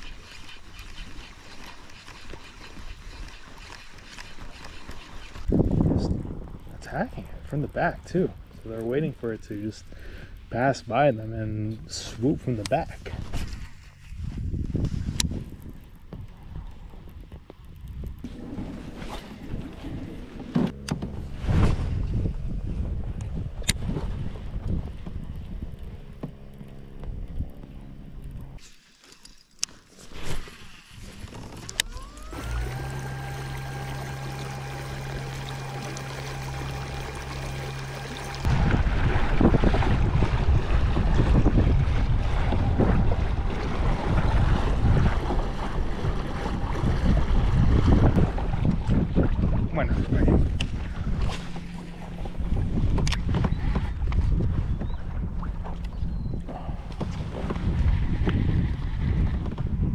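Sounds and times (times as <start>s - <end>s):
fishing reel clicking: 0.0s - 5.5s, 31.7s - 38.2s
wind: 0.0s - 59.9s
rushing water: 31.1s - 49.8s
electric motor whine: 31.2s - 38.9s.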